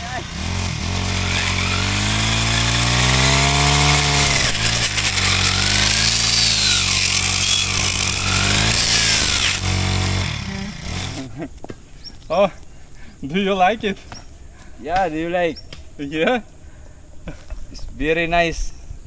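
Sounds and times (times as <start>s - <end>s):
brush cutter cutting wood: 0.0s - 11.4s.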